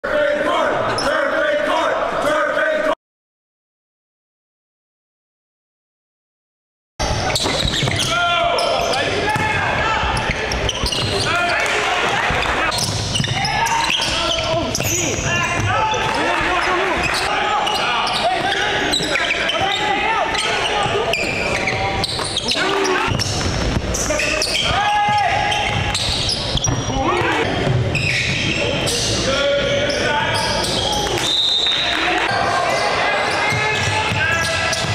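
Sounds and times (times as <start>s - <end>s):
people's voices: 7.0s - 34.9s
basketball bouncing on court: 7.2s - 17.2s, 23.1s - 28.6s, 33.5s - 34.9s.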